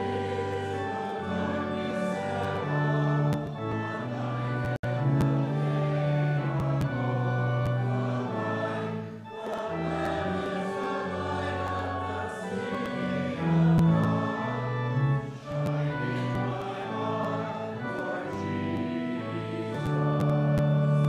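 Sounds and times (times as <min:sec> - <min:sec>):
congregation singing a hymn: 0:00.0 - 0:21.0
instrumental accompaniment: 0:00.0 - 0:21.0.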